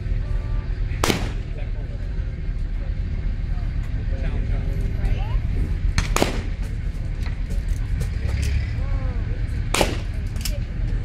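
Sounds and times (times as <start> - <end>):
steady low rumble: 0.0 - 11.0
shotgun shot with echo: 1.0 - 1.6, 6.0 - 6.7, 9.7 - 10.2.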